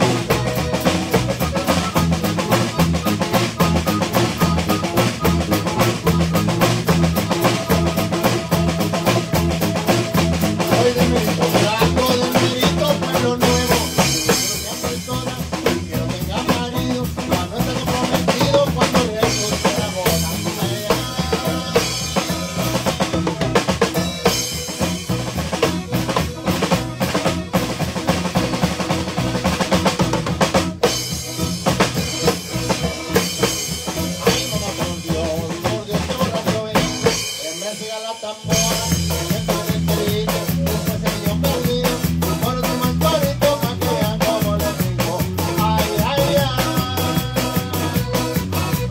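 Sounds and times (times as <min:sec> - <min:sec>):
drum kit fast beat: 0:00.0 - 0:48.9
live band playing instrumental: 0:00.0 - 0:48.9.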